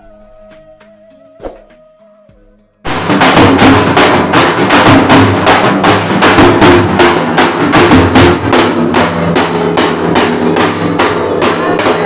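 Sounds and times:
frame drums beaten with sticks: 1.4 - 12.0.

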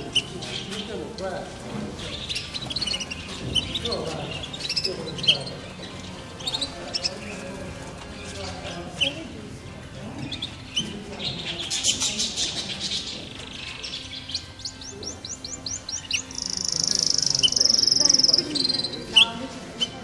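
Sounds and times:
canaries chirping and trilling: 0.0 - 20.0.

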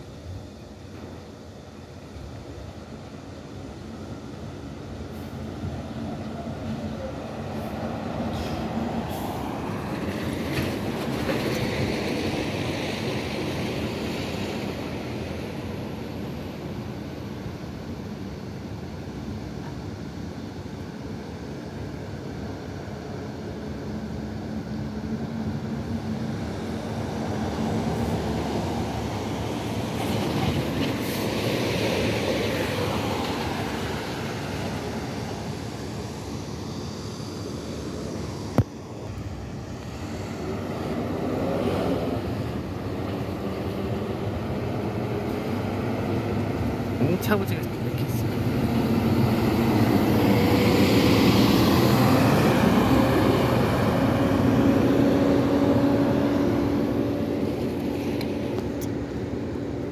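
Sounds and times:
bus engine: 0.0 - 59.9
road traffic: 0.0 - 59.9
car passing: 25.8 - 59.9.

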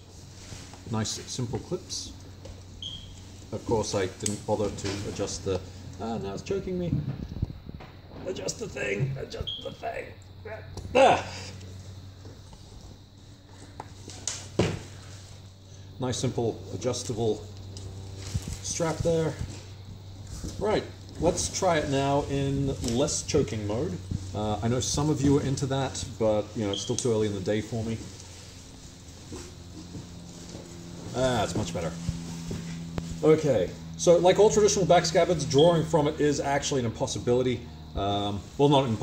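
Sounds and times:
rustling of nylon straps and fabric: 0.0 - 8.4, 16.6 - 35.8
steady low hum: 0.0 - 39.0.

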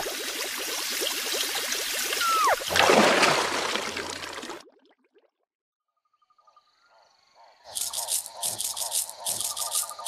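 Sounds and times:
water bubbling: 0.0 - 5.3.

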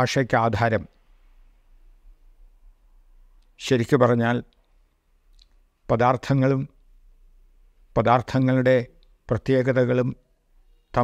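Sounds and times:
man lecturing: 0.0 - 1.0, 3.6 - 4.6, 5.8 - 6.8, 7.9 - 10.2.

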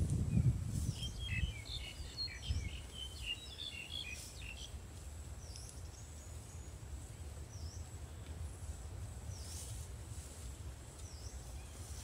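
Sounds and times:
small birds chirping: 0.1 - 8.4, 9.2 - 9.8, 10.8 - 12.0.

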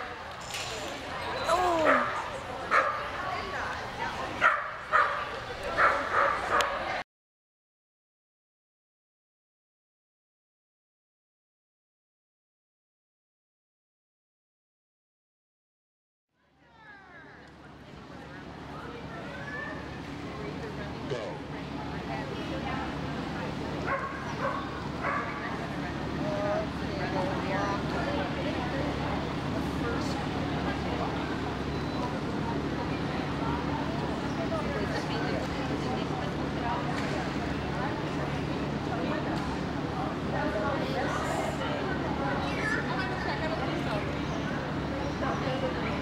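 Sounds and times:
chatter in a large hall: 0.0 - 7.0, 16.4 - 46.0
steady background noise: 0.0 - 7.0, 16.4 - 46.0
dog barking: 2.7 - 3.0, 4.4 - 6.8, 23.9 - 25.4.

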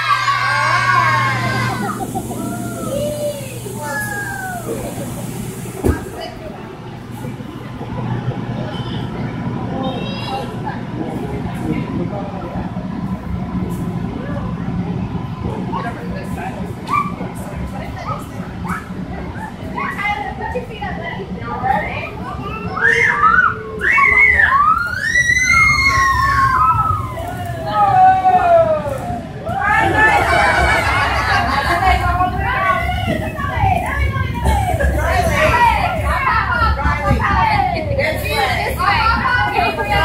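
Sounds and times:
electric blower humming: 0.0 - 6.4
faint voices: 0.0 - 40.0
young children chattering: 0.0 - 40.0.

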